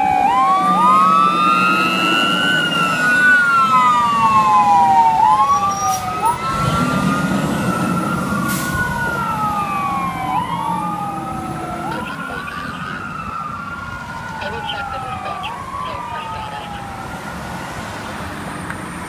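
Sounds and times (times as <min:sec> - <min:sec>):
fire engine siren wailing: 0:00.0 - 0:19.0
truck engine rumble: 0:00.0 - 0:19.0.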